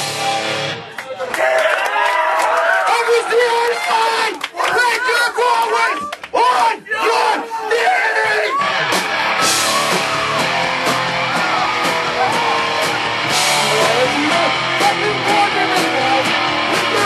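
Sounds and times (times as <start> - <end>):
distorted electric guitars: 0.0 - 1.0, 8.5 - 17.0
drums: 0.0 - 1.1, 8.4 - 17.0.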